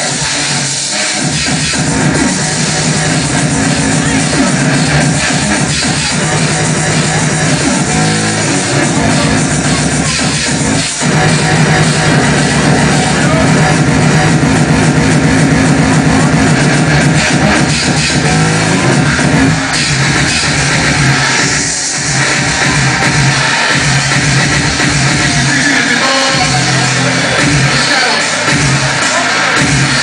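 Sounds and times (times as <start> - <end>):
hardcore electronic dance music: 0.0 - 30.0.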